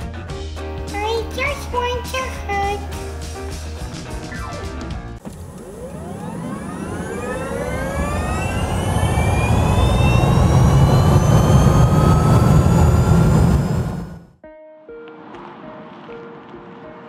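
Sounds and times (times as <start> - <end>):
engine whine rising in pitch: 5.2 - 14.4
low rumble: 5.8 - 14.3.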